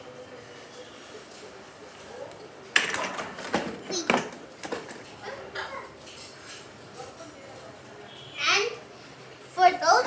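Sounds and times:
toy car clattering on tiles: 0:02.8 - 0:05.0
child's voice: 0:09.5 - 0:10.0.

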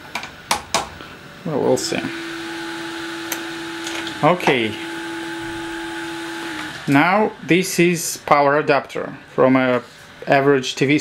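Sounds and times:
engraving machine motors humming: 0:01.8 - 0:08.4.

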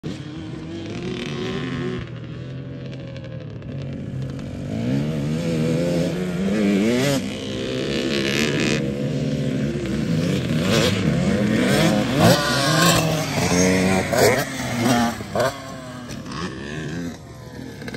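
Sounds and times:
dirt bike engines revving: 0:00.0 - 0:17.9.

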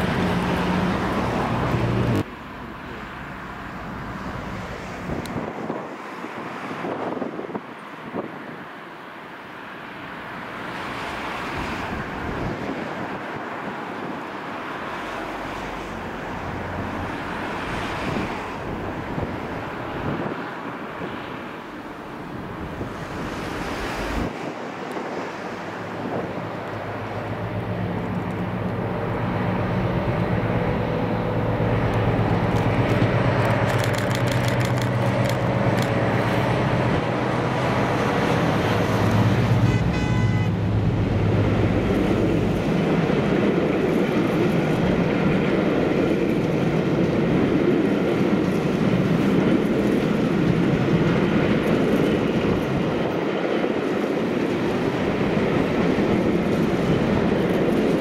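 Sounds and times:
train coaches rumbling over rails: 0:00.0 - 0:08.7, 0:09.9 - 0:58.0
diesel locomotive engine: 0:00.0 - 0:58.0.

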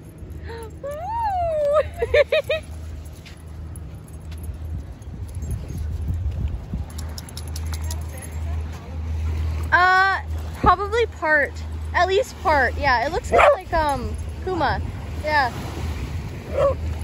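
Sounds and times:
low steady rumble: 0:00.0 - 0:17.0
woman laughing: 0:00.5 - 0:02.8
woman whooping: 0:00.8 - 0:02.1.

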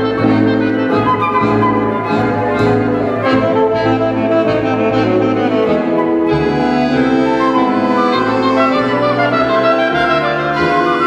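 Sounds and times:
chamber ensemble playing tango: 0:00.0 - 0:11.0.

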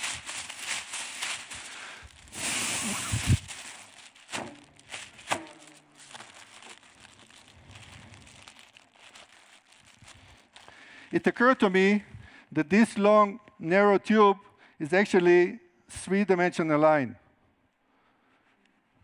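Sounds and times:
plastic tube crinkling: 0:00.0 - 0:11.3
plastic film crackling: 0:00.0 - 0:11.7
breath blown into tube: 0:01.7 - 0:03.4.

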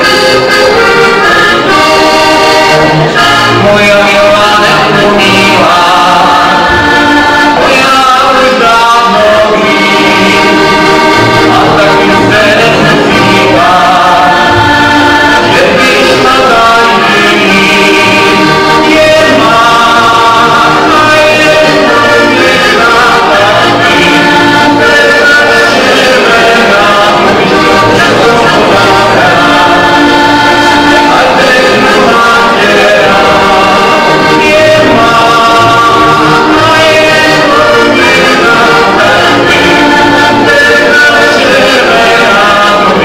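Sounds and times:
button accordion playing: 0:00.0 - 0:43.0
man singing: 0:00.0 - 0:43.0.

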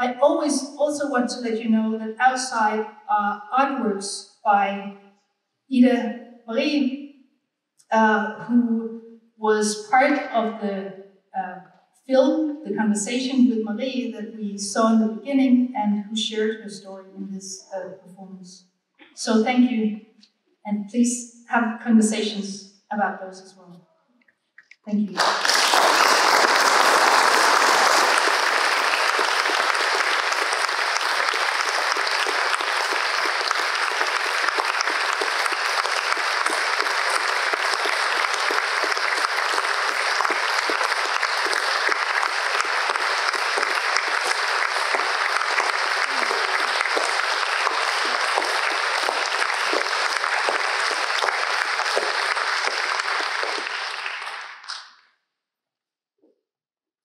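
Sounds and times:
audience applauding: 0:25.2 - 0:54.9.

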